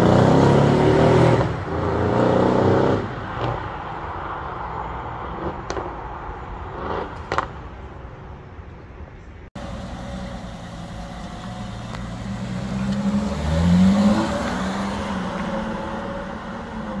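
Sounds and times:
car engine running: 0:09.6 - 0:17.0.

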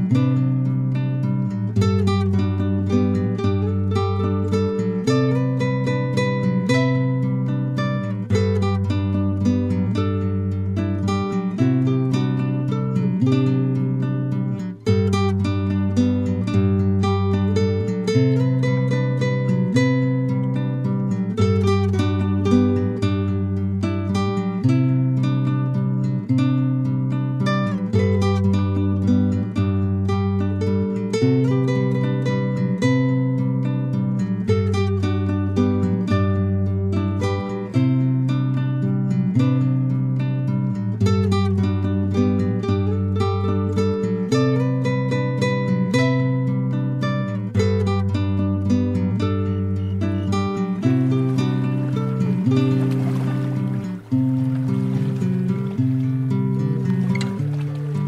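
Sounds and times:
plucked acoustic guitar: 0:00.0 - 0:58.0.

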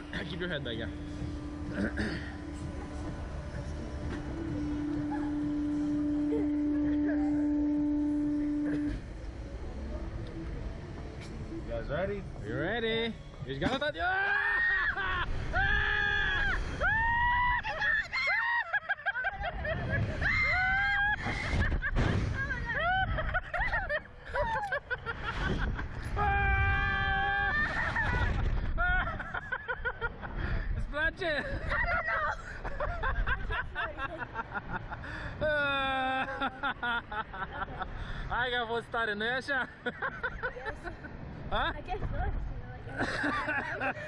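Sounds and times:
low background rumble: 0:00.0 - 0:38.4
ride machinery hum: 0:00.0 - 0:44.0
riders screaming and shrieking: 0:14.0 - 0:19.0, 0:20.0 - 0:24.7, 0:26.0 - 0:28.4
wind rushing over microphone: 0:24.4 - 0:29.3.

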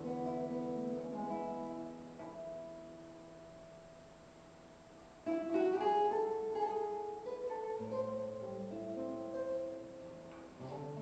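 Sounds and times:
classical guitar fingerstyle: 0:00.0 - 0:11.0.

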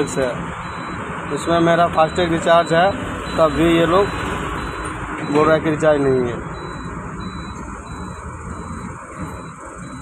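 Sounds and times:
truck engine idling: 0:00.0 - 0:10.0
faint high beep: 0:06.6 - 0:10.0.

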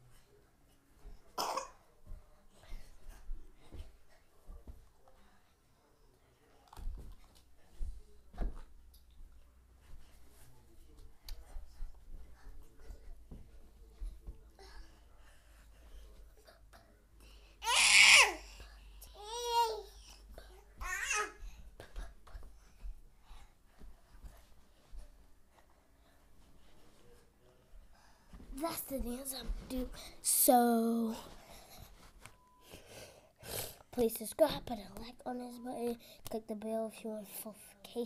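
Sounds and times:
bare feet thudding on carpet: 0:06.8 - 0:14.8, 0:20.8 - 0:27.1, 0:27.7 - 0:30.1.

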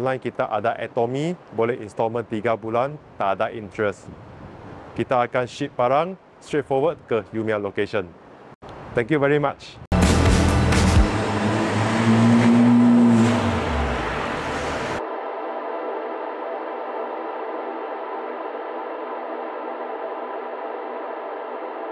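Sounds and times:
car engine accelerating: 0:09.9 - 0:15.0.

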